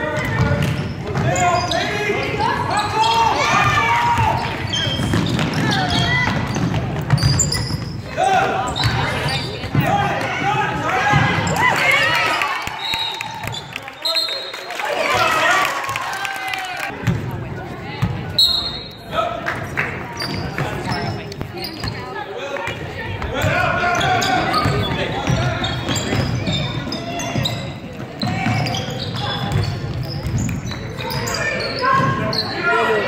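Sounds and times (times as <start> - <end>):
basketball bouncing on wooden floor: 3.6 - 7.9, 28.2 - 30.8.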